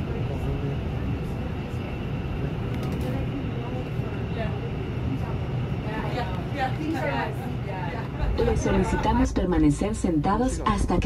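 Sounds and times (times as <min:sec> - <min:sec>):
airliner engines rumbling: 0:00.0 - 0:11.0.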